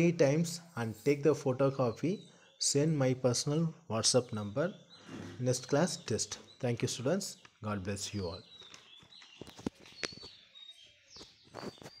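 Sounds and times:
faint high bird chirps: 0:00.0 - 0:12.0.

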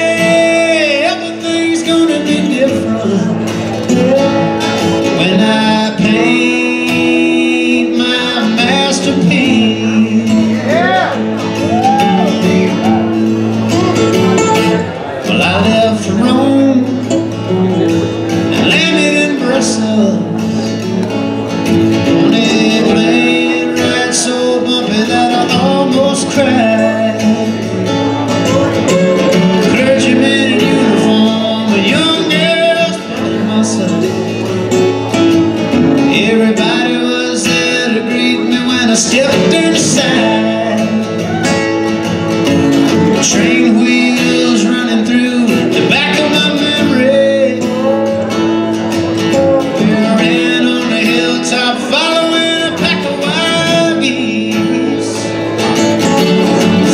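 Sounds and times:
acoustic guitar picking melody: 0:00.0 - 0:56.9
acoustic guitar strumming chords: 0:00.0 - 0:56.9.

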